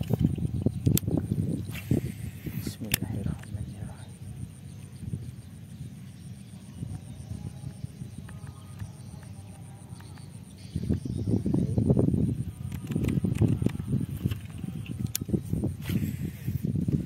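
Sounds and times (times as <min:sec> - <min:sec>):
fishing reel sharp clicks: 0:01.7 - 0:03.1.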